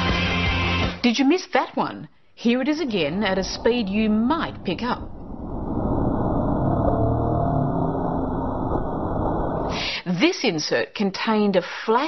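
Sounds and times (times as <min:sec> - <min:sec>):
low muffled drone: 0:02.2 - 0:09.8.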